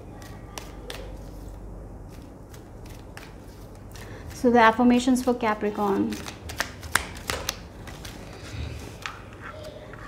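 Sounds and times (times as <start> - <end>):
cards being shuffled: 0.1 - 4.5, 5.2 - 9.9.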